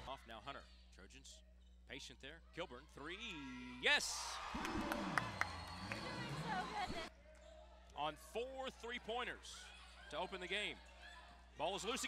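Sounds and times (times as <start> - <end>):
crowd cheering and shouting: 4.0 - 7.1.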